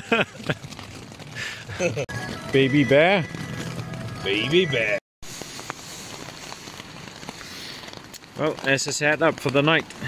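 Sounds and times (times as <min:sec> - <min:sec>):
rain pattering on tarp: 0:00.0 - 0:10.0.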